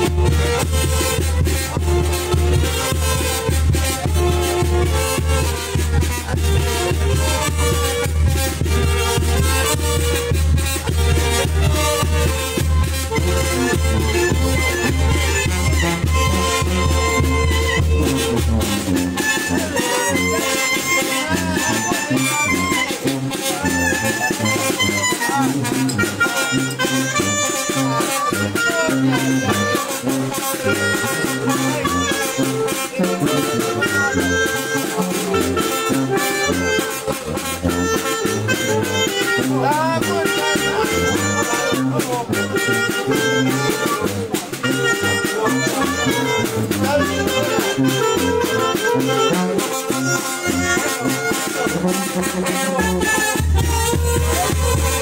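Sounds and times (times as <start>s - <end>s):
band music: 0.0s - 55.0s
tuba bass line: 0.0s - 55.0s.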